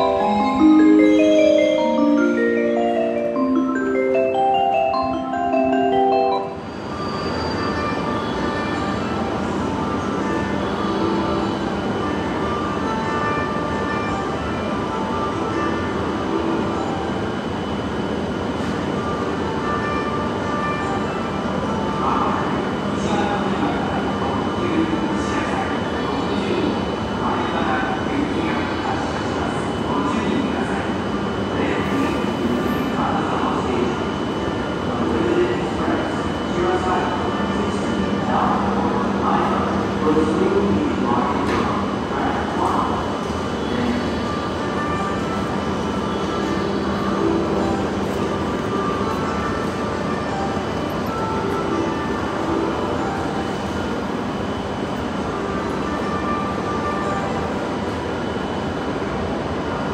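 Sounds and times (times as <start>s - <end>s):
train running noise: 0.0s - 59.9s.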